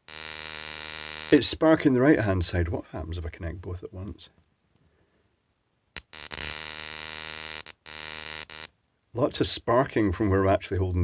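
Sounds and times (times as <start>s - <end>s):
igniter sparks crackling buzz: 0.0s - 1.4s, 6.0s - 8.7s.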